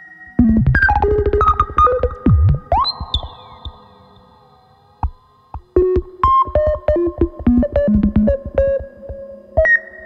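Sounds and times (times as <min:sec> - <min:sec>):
faint hum of tones: 0:00.0 - 0:10.0
plucked synth notes: 0:00.4 - 0:04.4, 0:05.0 - 0:09.3.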